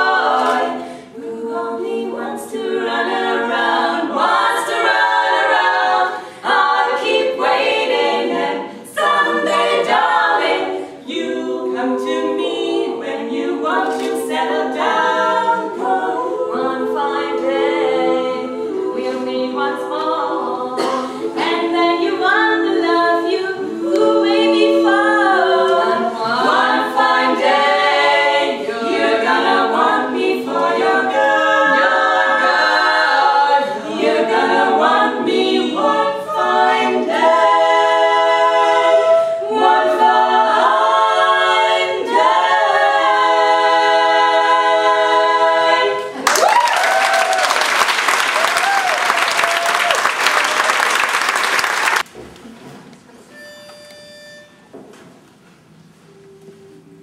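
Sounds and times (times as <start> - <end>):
women singing a cappella harmony: 0.0 - 46.3
audience applause: 46.2 - 52.1.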